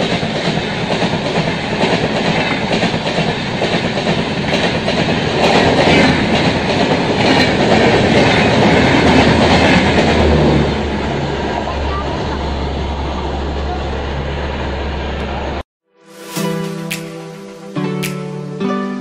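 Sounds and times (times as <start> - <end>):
train wheels clattering over rail joints: 0.0 - 10.6.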